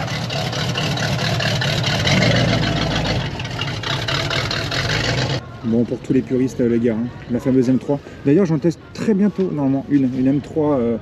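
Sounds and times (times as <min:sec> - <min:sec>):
car engine at low speed: 0:00.0 - 0:05.5.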